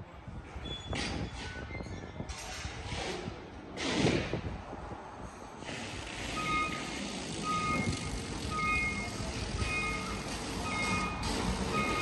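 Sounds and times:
short electronic beeps: 0:06.3 - 0:12.0.

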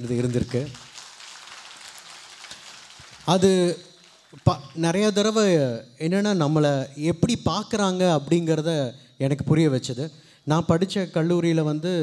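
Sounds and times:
faint steady hiss: 0:00.0 - 0:06.1.

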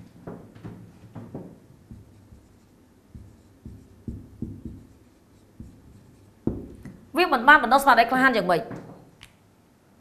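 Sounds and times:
marker tap on whiteboard: 0:00.3 - 0:02.5, 0:03.1 - 0:05.0, 0:05.6 - 0:07.0
marker writing on whiteboard: 0:01.4 - 0:07.0.

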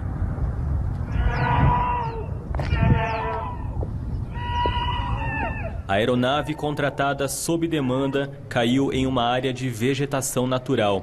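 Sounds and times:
steady low rumble: 0:00.0 - 0:10.7
people screaming: 0:01.0 - 0:06.5.

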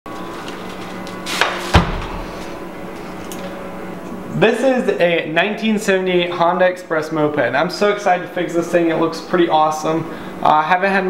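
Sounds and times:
steady low hum: 0:00.1 - 0:11.0
heavy thud: 0:01.4 - 0:02.6.

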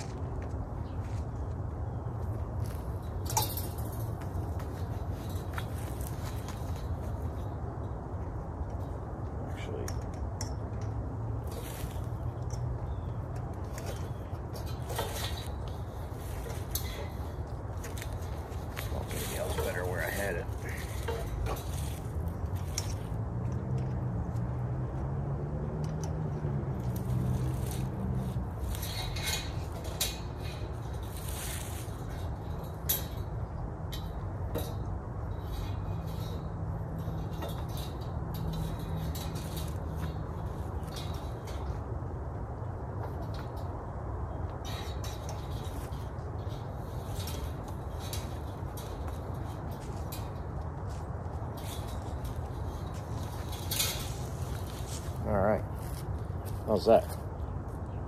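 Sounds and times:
steady low rumble: 0:00.0 - 0:58.0
metal stake rattling on chain-link: 0:02.6 - 0:24.6, 0:25.2 - 0:57.4.

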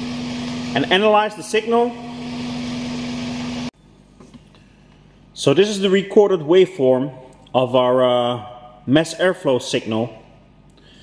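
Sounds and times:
engine running with steady hum: 0:00.0 - 0:03.7.

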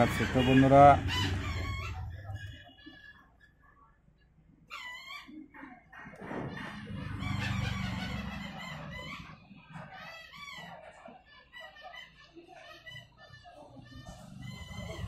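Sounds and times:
chickens clucking: 0:05.0 - 0:15.0.

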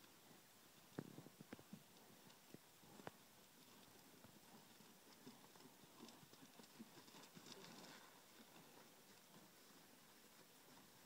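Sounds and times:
horse hoofbeats on dirt: 0:01.2 - 0:11.0.

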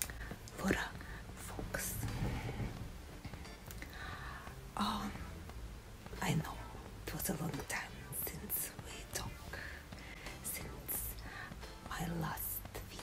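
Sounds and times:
woman whispering: 0:00.6 - 0:02.4, 0:10.5 - 0:11.2, 0:11.9 - 0:13.0.

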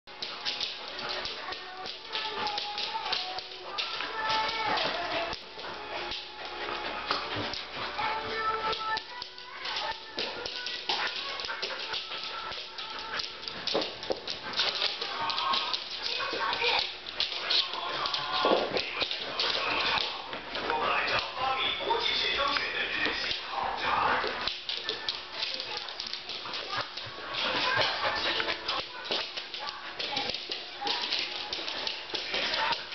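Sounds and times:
dogs vocalising and play-growling: 0:09.6 - 0:13.7, 0:25.0 - 0:32.9.

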